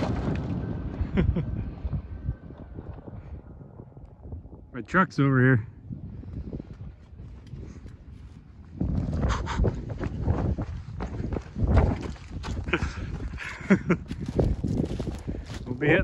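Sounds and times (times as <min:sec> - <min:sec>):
footsteps on dirt: 0:06.7 - 0:16.0.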